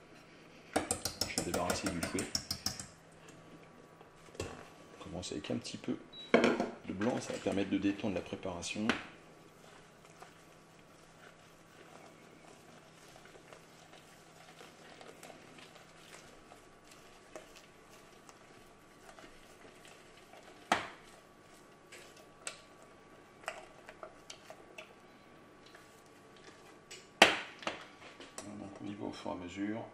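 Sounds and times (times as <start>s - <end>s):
spatula tapping a metal pan: 0.8s - 2.9s.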